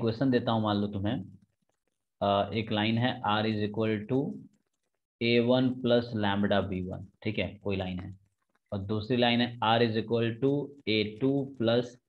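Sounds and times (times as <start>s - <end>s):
man talking: 0.0s - 1.3s, 2.2s - 4.4s, 5.2s - 12.0s.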